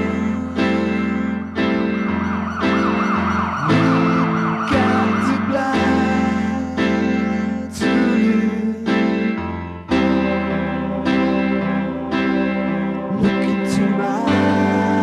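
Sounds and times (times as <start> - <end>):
warbling high lead line: 0.0 - 7.2
sustained synth chords: 0.0 - 15.0.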